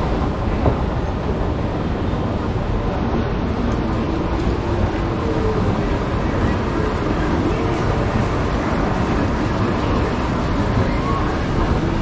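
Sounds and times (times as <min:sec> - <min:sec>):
faint indistinct voices: 0:00.0 - 0:12.0
steady noisy rumble: 0:00.0 - 0:12.0.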